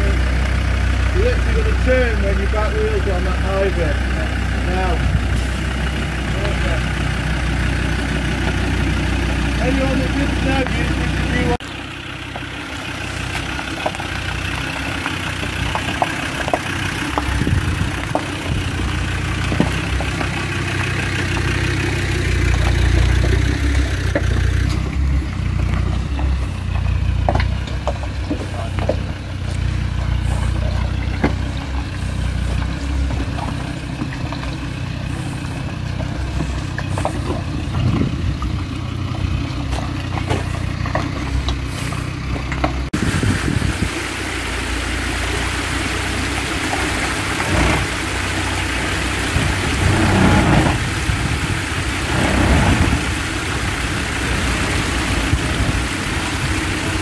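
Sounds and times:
engine running at low revs: 0.0s - 57.0s
stones clicking under tyres: 1.9s - 43.0s.

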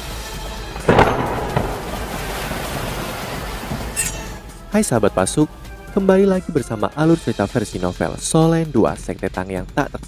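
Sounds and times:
long rumbling noise: 0.9s - 3.6s
loud boom: 0.9s - 3.6s.

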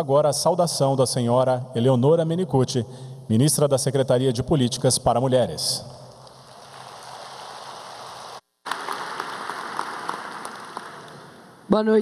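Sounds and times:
audience applauding: 6.3s - 11.7s.

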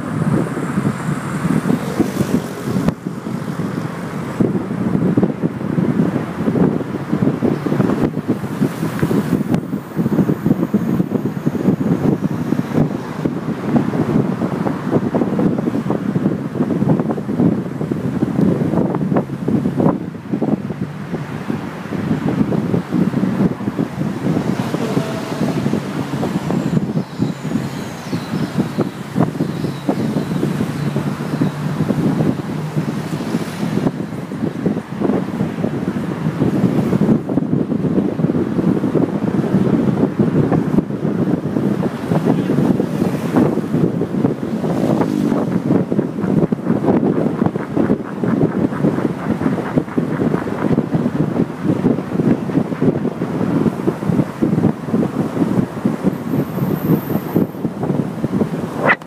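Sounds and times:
road and traffic noise: 0.0s - 59.0s
wind buffeting microphone: 0.0s - 59.0s.

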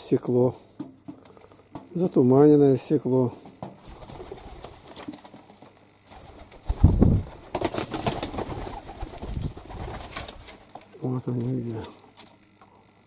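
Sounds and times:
wings flapping: 3.5s - 10.8s
pigeons cooing: 6.2s - 10.4s.

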